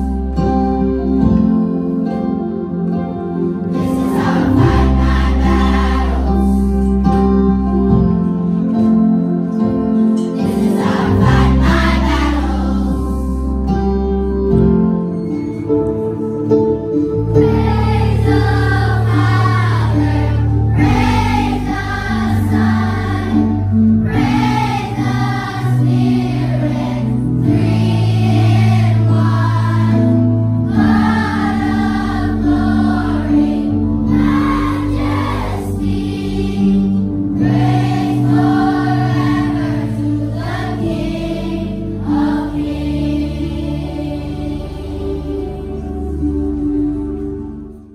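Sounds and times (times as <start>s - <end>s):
children's choir singing: 0.0s - 47.9s
electronic keyboard low notes: 0.0s - 47.9s.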